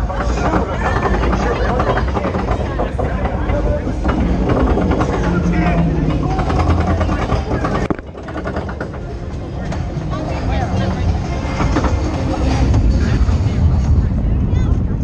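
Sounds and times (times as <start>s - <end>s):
riders' indistinct voices: 0.0s - 15.0s
roller coaster rumbling on track: 0.0s - 15.0s.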